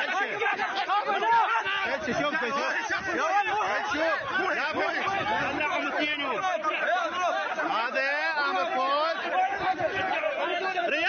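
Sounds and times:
men talking at once: 0:00.0 - 0:11.0.

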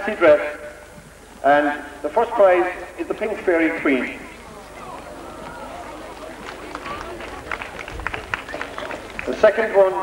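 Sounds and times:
murmur of voices: 0:00.0 - 0:10.0
crowd clapping: 0:04.9 - 0:10.0.

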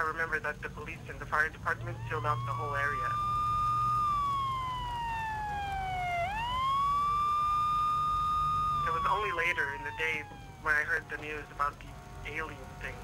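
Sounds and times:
emergency vehicle siren wailing: 0:01.6 - 0:13.0.

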